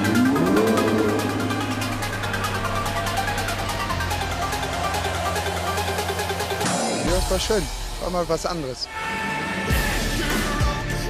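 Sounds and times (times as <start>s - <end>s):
held bass note: 0.0s - 2.9s
background music with steady beat: 0.0s - 11.0s.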